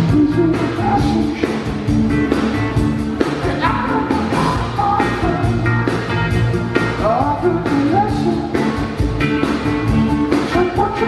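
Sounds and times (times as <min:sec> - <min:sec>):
singer: 0:00.0 - 0:01.8, 0:03.4 - 0:05.8, 0:06.8 - 0:08.9, 0:10.4 - 0:11.0
electric guitar: 0:00.0 - 0:11.0
keyboards: 0:00.0 - 0:11.0.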